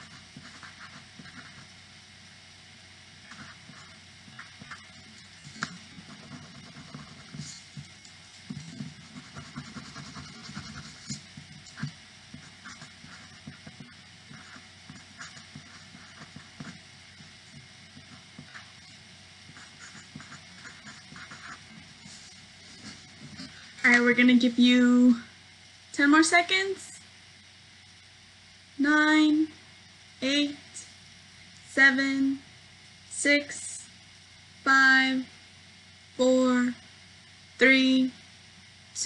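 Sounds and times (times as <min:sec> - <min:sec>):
pencil writing on paper: 0:05.5 - 0:07.9, 0:08.5 - 0:18.8, 0:19.5 - 0:23.6.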